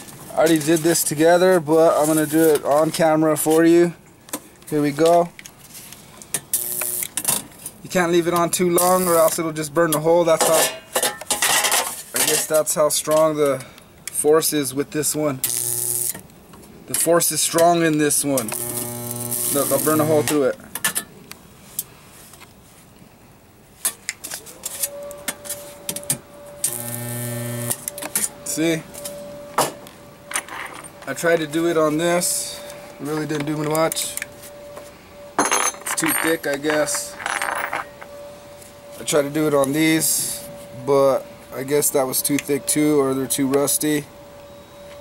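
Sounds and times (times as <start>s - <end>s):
spot welder click: 6.5s - 7.2s, 15.4s - 16.2s, 18.4s - 20.4s, 26.6s - 28.1s
steady hum: 6.5s - 7.2s, 15.2s - 16.9s, 17.6s - 20.6s, 24.9s - 45.0s
welding sizzling crackle: 6.5s - 7.2s, 8.8s - 9.4s, 15.4s - 16.2s, 18.3s - 20.4s, 26.6s - 27.9s.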